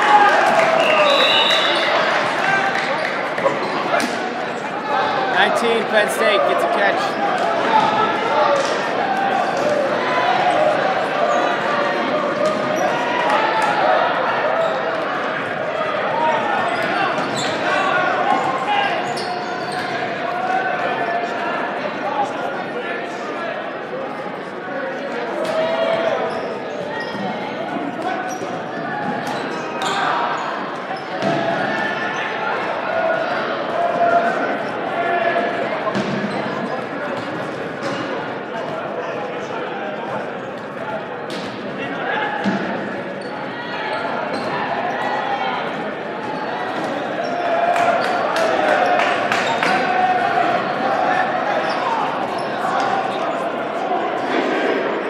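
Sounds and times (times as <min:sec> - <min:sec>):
players and spectators shouting: 0:00.0 - 0:37.2, 0:41.8 - 0:55.0.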